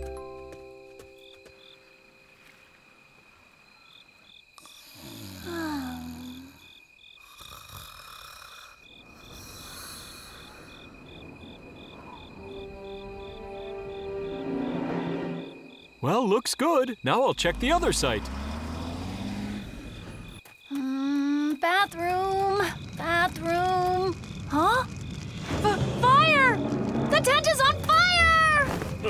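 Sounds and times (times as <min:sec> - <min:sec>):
crickets chirping: 0:00.0 - 0:29.0
high insect trill: 0:00.1 - 0:29.0.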